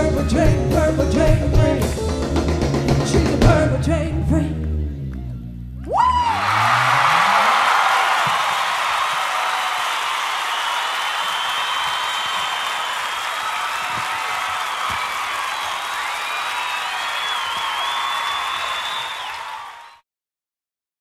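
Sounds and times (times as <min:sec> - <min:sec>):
audience applause and cheering: 0:05.9 - 0:20.0
long whistles: 0:09.4 - 0:20.0.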